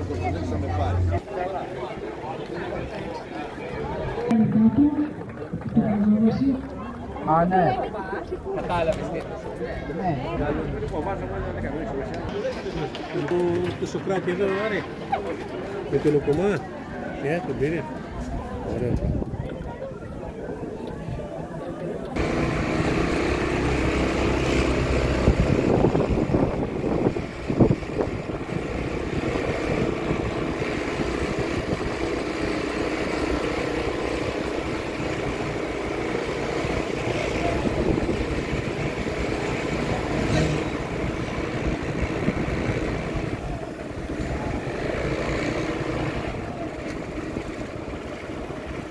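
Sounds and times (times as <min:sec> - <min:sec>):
vehicle engine and road noise: 0:00.0 - 0:48.9.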